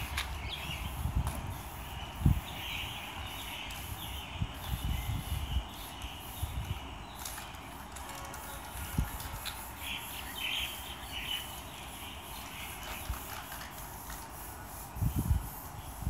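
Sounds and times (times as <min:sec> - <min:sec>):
outdoor ambience: 0:00.0 - 0:16.0
spray-paint can hissing: 0:00.0 - 0:16.0.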